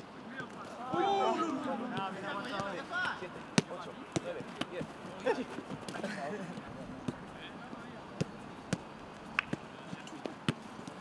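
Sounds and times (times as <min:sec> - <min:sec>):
players' voices: 0:00.2 - 0:10.5.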